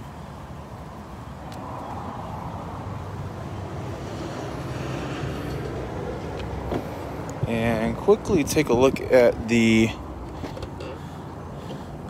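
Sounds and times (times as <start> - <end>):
low rumble of road traffic: 0.0 - 12.0.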